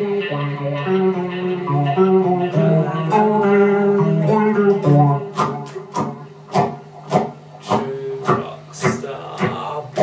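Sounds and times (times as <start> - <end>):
electric guitar strumming: 0.0 - 10.0.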